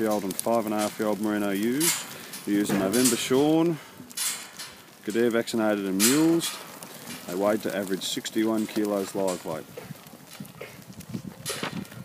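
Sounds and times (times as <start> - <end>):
sheep hooves on dirt: 0.0 - 12.0.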